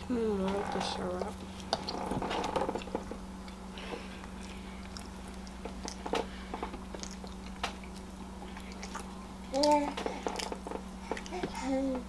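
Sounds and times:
low electrical hum: 0.0s - 12.0s
close chewing with mouth clicks: 1.4s - 11.6s.

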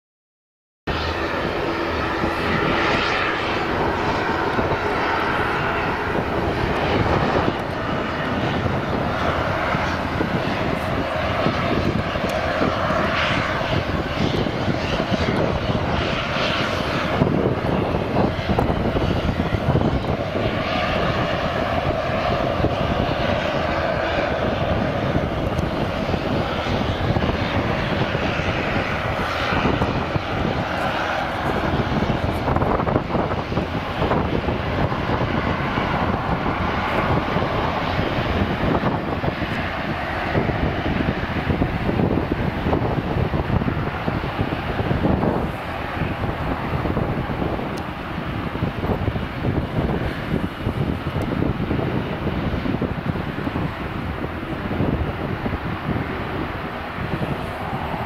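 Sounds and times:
jet aircraft engines running: 0.9s - 58.0s.

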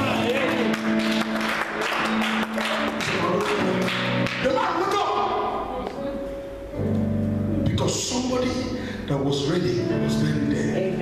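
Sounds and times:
live music: 0.0s - 7.6s.

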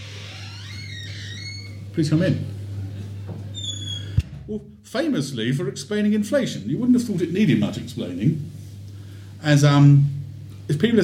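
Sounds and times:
door creaking open: 0.0s - 1.9s, 3.5s - 4.5s
low electrical hum: 0.0s - 11.0s.

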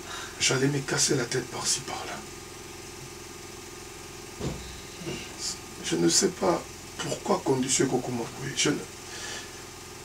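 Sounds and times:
motor-like hum: 0.0s - 10.0s.

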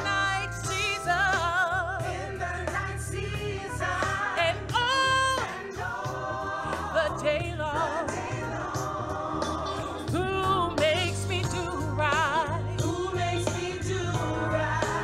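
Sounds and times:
woman singing gospel solo: 0.0s - 5.9s, 6.8s - 8.3s, 10.0s - 15.0s.

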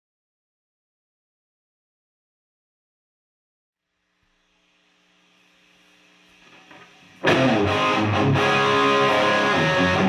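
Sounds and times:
guitar amp hum and hiss: 3.8s - 10.0s.

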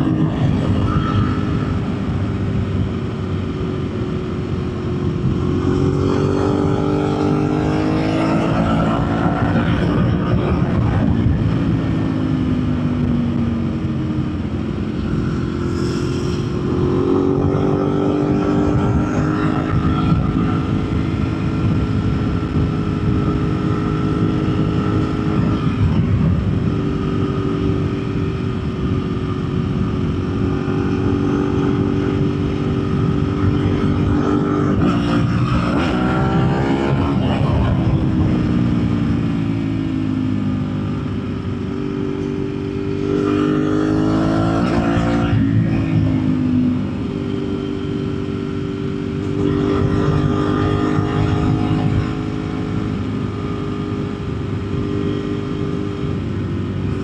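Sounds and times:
motorcycle engine revving: 0.0s - 57.0s
wind rush: 0.0s - 57.0s.

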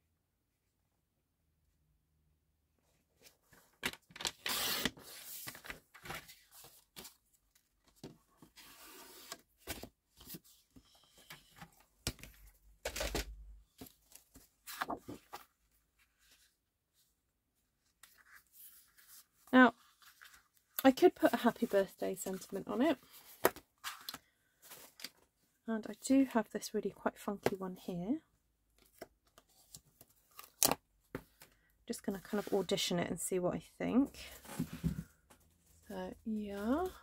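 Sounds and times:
card rustling and sliding: 8.4s - 10.6s.

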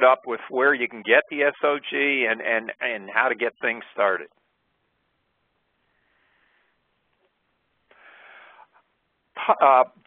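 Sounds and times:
man speaking: 0.0s - 4.4s, 9.4s - 10.0s
man breathing in: 5.9s - 6.8s, 7.9s - 8.8s.

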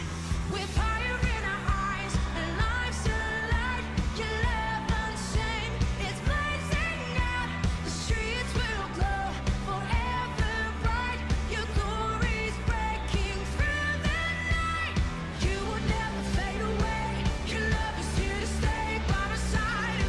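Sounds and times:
person singing: 0.0s - 20.0s.

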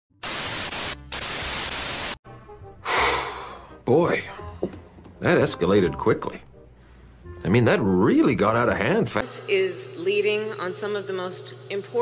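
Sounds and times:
television static hiss: 0.2s - 2.2s
breathy exhale: 2.8s - 3.8s, 6.8s - 7.2s
faint music: 3.7s - 12.0s.

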